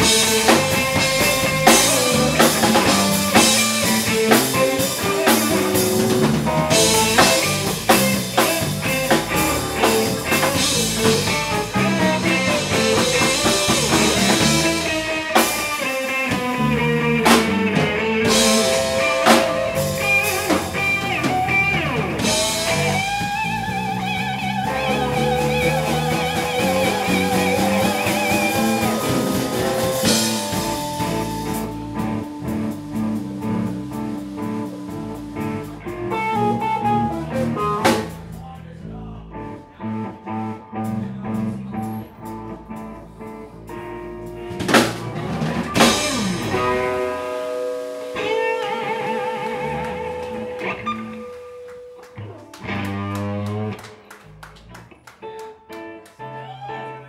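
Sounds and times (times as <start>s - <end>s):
blues-rock band playing: 0.0s - 38.5s, 39.3s - 57.0s.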